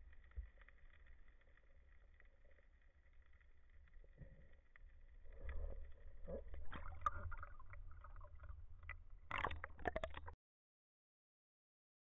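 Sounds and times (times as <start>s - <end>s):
small knocks and splashes: 6.3s - 10.4s.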